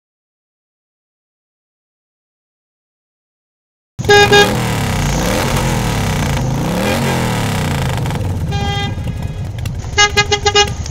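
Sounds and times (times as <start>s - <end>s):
road traffic noise: 4.0s - 10.9s
vehicle horns honking: 4.0s - 10.9s.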